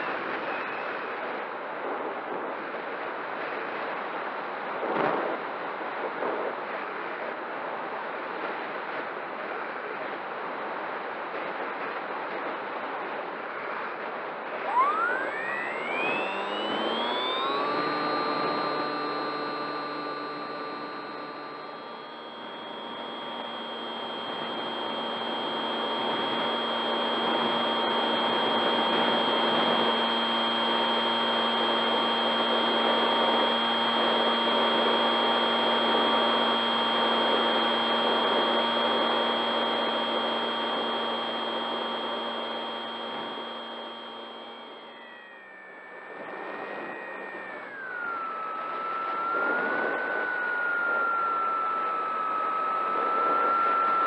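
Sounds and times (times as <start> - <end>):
electric motor and propeller whining: 14.4 - 54.0.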